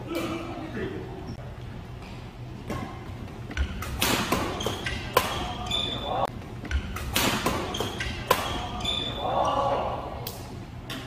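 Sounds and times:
racket hitting shuttlecock: 0:02.6 - 0:05.9, 0:06.6 - 0:09.0.

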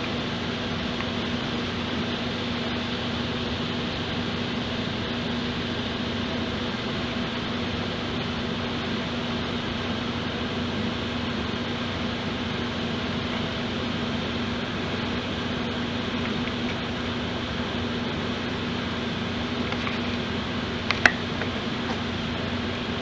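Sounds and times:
mechanical hum with hiss: 0:00.0 - 0:23.0.

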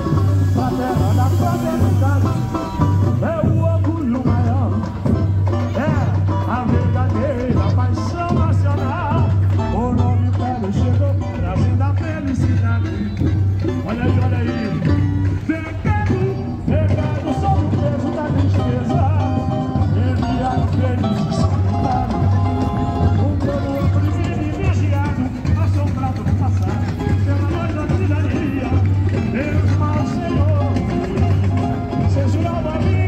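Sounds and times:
person singing melody: 0:00.0 - 0:33.0
samba band with deep bass: 0:00.0 - 0:33.0.

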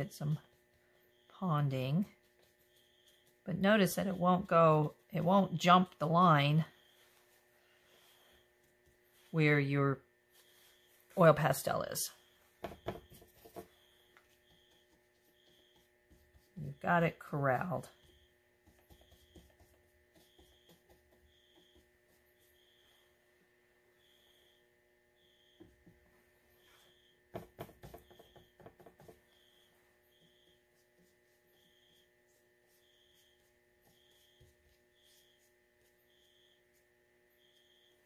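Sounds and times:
steady electrical hum: 0:00.0 - 0:38.0.

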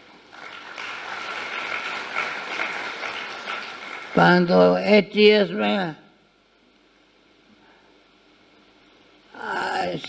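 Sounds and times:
audience clapping: 0:00.0 - 0:04.8.

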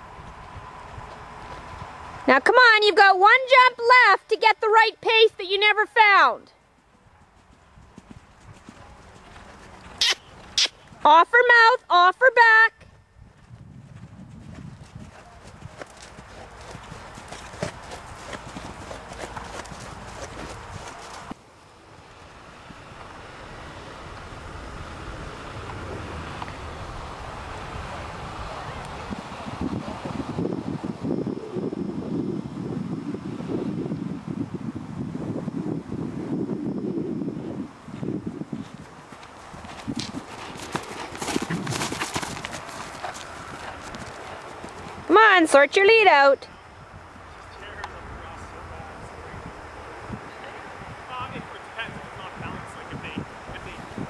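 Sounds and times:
horse hoofbeats on sand: 0:06.8 - 0:11.2, 0:12.9 - 0:21.4, 0:37.9 - 0:45.2.

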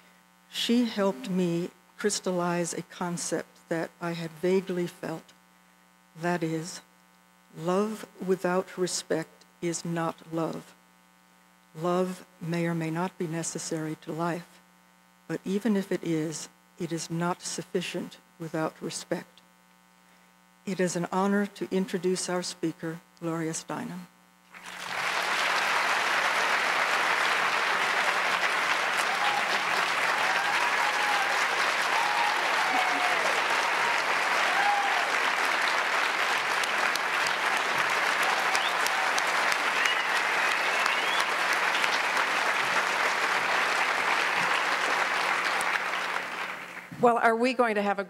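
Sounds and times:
audience applauding: 0:24.5 - 0:46.9.

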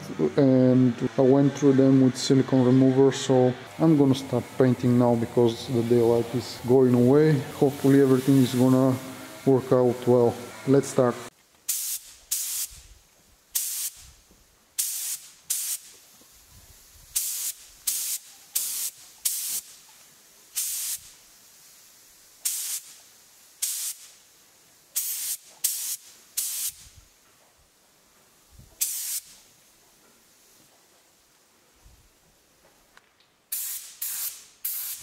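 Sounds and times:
compressed air gun hissing: 0:03.7 - 0:10.8, 0:11.6 - 0:27.2, 0:28.5 - 0:29.7, 0:33.5 - 0:35.0.

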